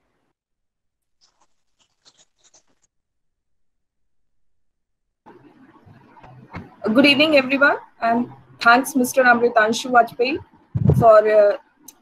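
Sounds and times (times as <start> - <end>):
faint clicks and scratches: 1.1 - 2.9.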